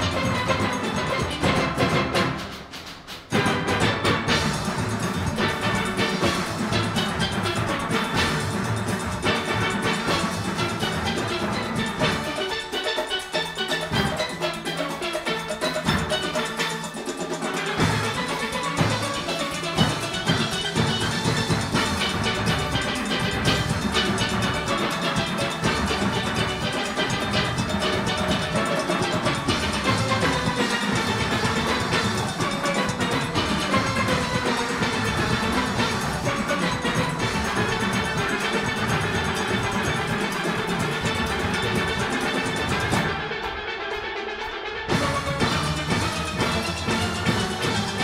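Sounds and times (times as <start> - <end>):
percussion section: 0.0 - 48.0
steel orchestra playing: 0.0 - 48.0.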